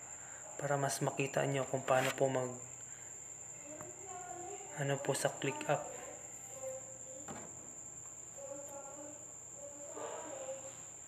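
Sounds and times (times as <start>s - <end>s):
faint high-pitched whine: 0.0s - 11.0s.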